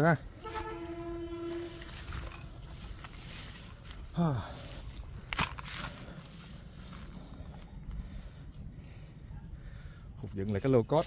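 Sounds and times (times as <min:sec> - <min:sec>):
horn blast: 0:00.2 - 0:03.0.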